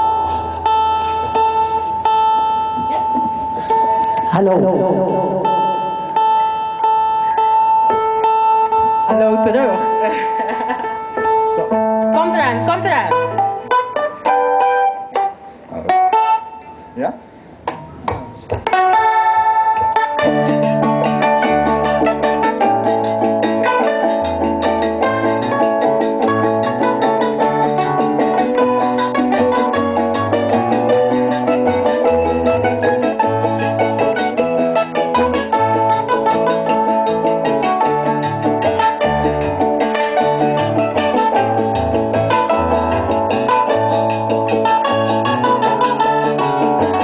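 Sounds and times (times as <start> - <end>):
bass line: 0.0 - 10.0, 19.3 - 47.0
band playing: 0.0 - 47.0
stringed instruments being tuned: 17.6 - 47.0.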